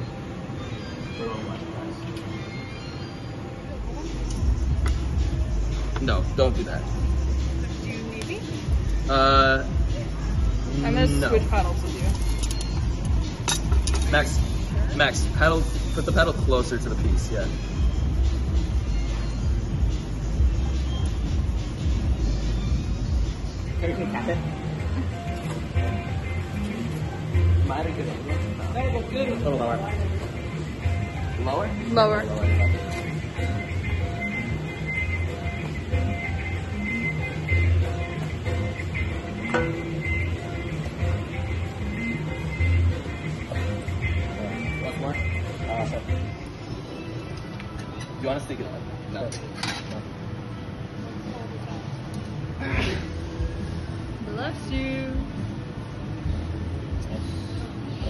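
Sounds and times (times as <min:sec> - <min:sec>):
background music: 0:00.0 - 0:51.0.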